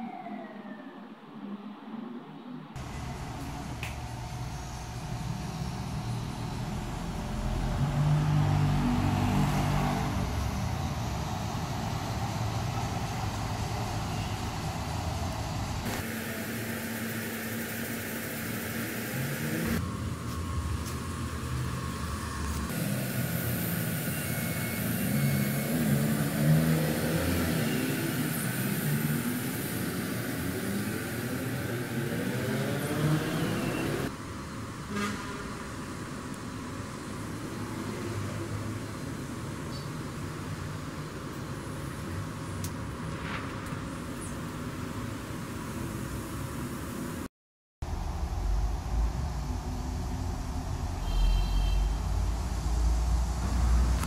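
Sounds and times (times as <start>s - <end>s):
motor vehicles passing: 2.8s - 15.9s, 19.2s - 34.5s.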